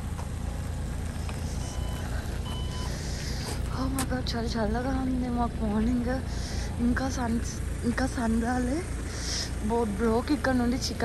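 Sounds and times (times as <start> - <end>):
vehicle rumble: 0.0 - 11.0
short electronic beeps: 1.6 - 3.0.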